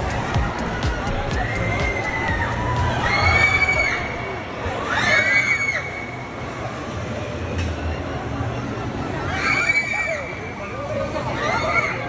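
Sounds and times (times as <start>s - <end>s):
children screaming: 0.0s - 6.3s, 9.2s - 10.4s
indoor crowd noise: 0.0s - 12.0s.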